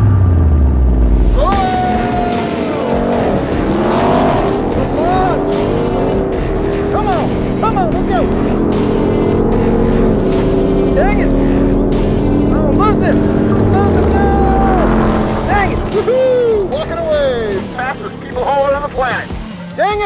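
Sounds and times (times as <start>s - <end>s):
background music: 0.0s - 20.0s
vehicle engines accelerating hard: 0.0s - 20.0s.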